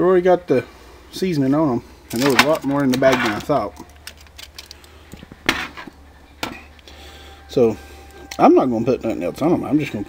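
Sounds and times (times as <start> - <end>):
aluminium foil crinkling: 2.1 - 6.0.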